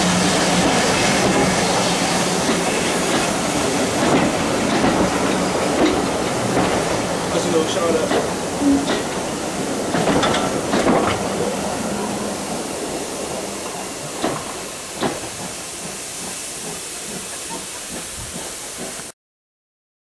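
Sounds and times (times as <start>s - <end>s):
train rumbling on track: 0.0s - 19.1s
train wheels clicking: 0.4s - 11.6s, 12.4s - 19.1s.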